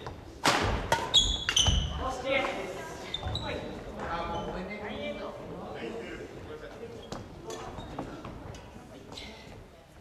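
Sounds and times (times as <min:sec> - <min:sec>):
voices in echoing hall: 0:00.0 - 0:10.0
shoe squeaks on wooden floor: 0:01.0 - 0:02.0, 0:03.0 - 0:04.6.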